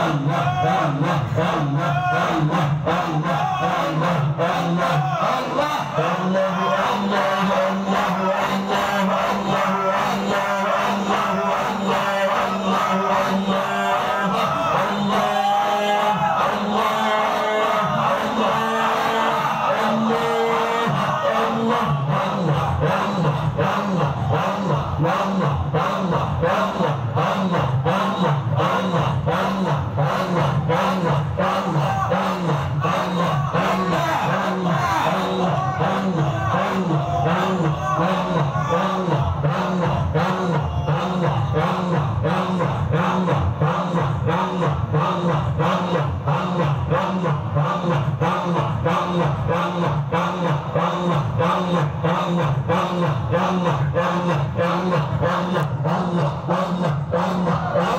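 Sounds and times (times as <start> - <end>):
men chanting in unison: 0.0 - 57.9.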